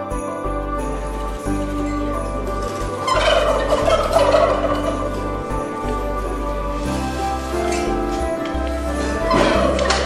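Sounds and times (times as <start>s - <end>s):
turkey gobbling: 3.0s - 5.3s.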